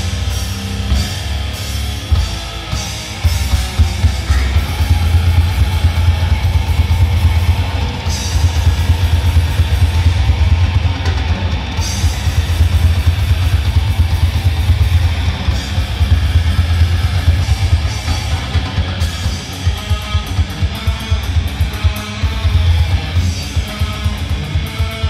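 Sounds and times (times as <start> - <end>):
heavy metal band playing: 0.0 - 25.0.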